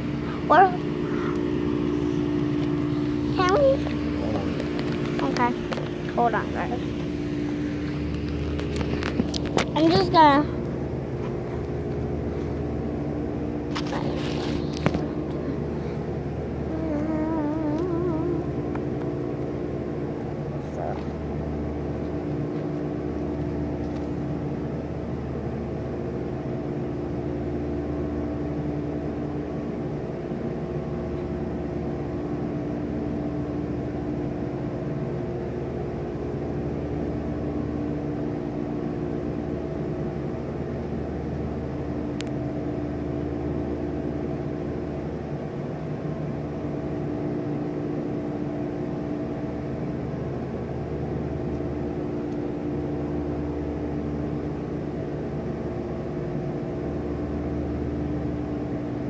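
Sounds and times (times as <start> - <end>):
mechanical hum with held tones: 0.0 - 59.0.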